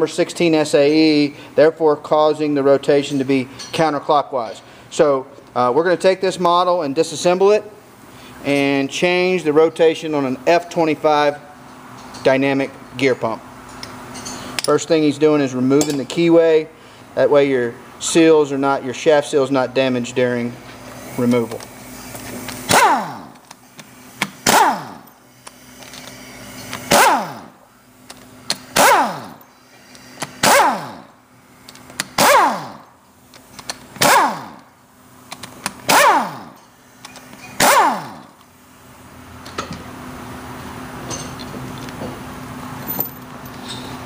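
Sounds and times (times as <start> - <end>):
air-powered driver bursts: 20.6 - 34.7, 35.3 - 38.6.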